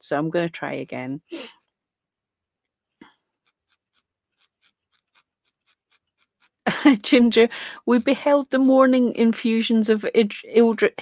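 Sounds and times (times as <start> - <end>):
felting needle poking felt: 0.6 - 11.0.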